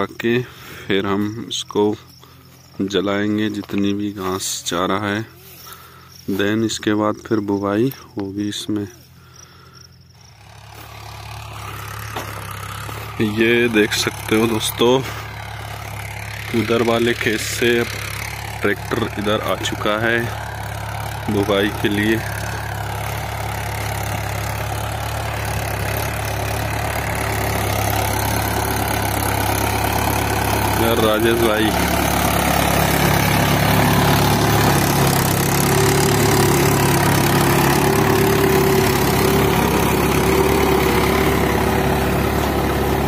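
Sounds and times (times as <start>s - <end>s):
tractor engine running: 0.0s - 43.0s.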